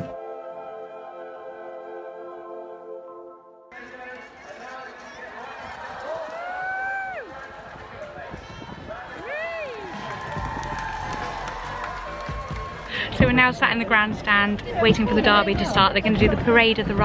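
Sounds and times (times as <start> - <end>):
outdoor crowd noise: 3.7 - 17.0.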